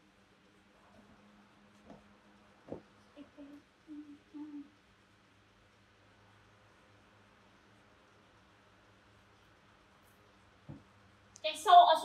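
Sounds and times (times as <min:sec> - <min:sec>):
person humming softly: 0:03.2 - 0:04.8.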